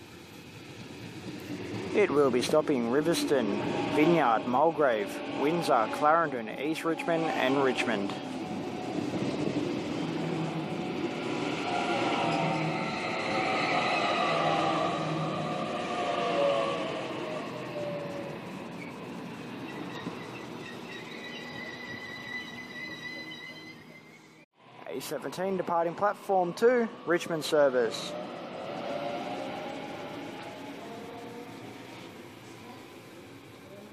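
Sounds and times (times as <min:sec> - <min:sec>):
train wheels rumbling on rails: 0:00.0 - 0:23.4.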